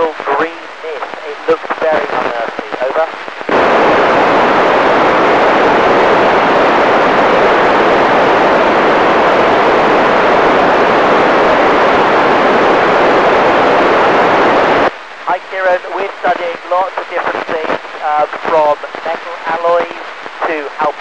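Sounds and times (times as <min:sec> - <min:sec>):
loud steady rushing noise: 0:00.0 - 0:21.0.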